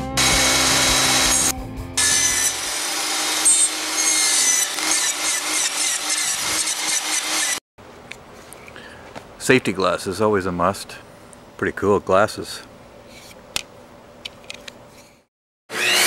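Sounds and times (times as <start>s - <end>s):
table saw cutting wood: 0.0s - 7.6s, 15.7s - 16.0s.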